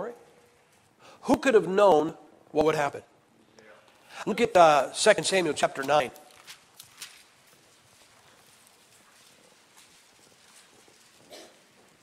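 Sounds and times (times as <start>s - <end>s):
pages turning: 5.8s - 10.9s.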